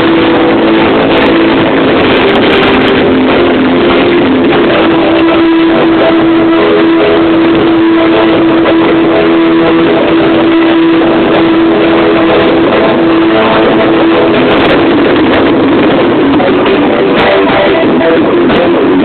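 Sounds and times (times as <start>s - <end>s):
music from loudspeakers: 0.0s - 19.0s.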